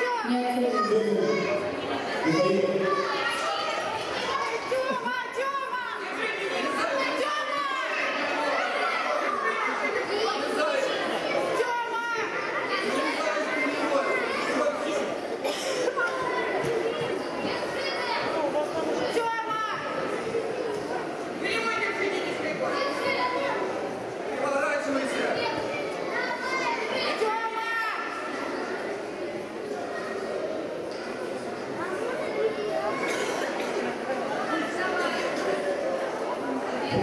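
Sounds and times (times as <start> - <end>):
children calling out: 0.0 - 20.2, 25.4 - 29.1, 29.7 - 35.3
crowd of voices chattering: 0.0 - 37.0.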